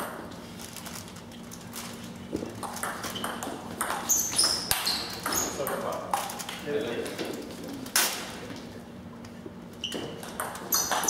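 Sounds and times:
ping pong ball clicking: 2.6 - 6.3, 10.2 - 11.0
shoe squeaks: 2.8 - 5.7, 9.8 - 11.0.

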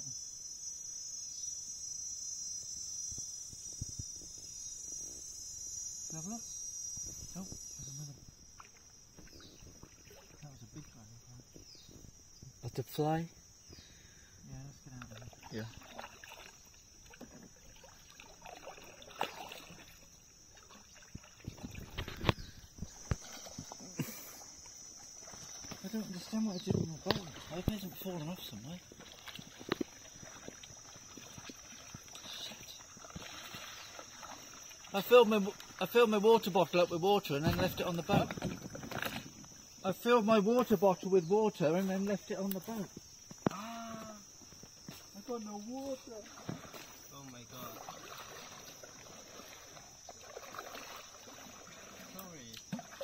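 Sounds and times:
knocks and clatters on kayak: 8.6 - 12.5, 15.0 - 20.0, 20.6 - 24.0, 25.2 - 34.6, 37.0 - 39.6, 42.7 - 45.2, 46.2 - 47.0.

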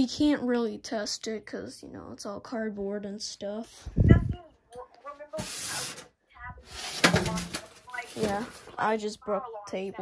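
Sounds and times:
rustling and clatter: 6.7 - 8.9.

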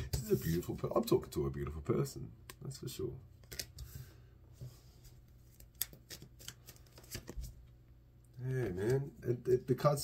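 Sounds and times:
cards snapping: 3.4 - 3.8, 5.5 - 7.4
cards sliding: 5.5 - 7.5.

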